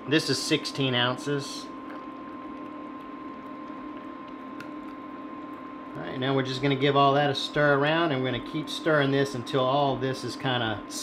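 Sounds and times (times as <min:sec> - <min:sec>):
steady hum: 0:00.0 - 0:11.0
soft squishing: 0:01.7 - 0:06.2.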